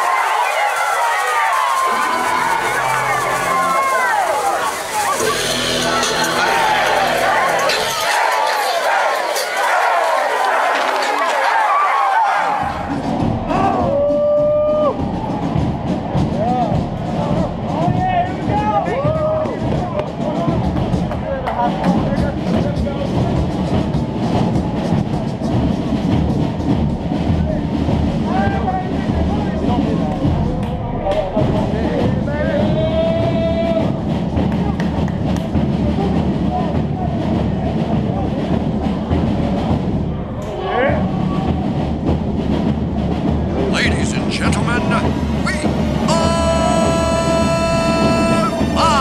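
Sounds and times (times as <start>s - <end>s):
players shouting: 0.0s - 20.3s, 43.7s - 49.0s.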